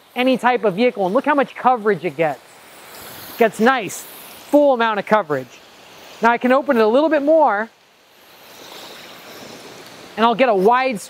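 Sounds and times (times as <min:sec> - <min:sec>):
water spraying from hose nozzle: 0:00.0 - 0:11.0.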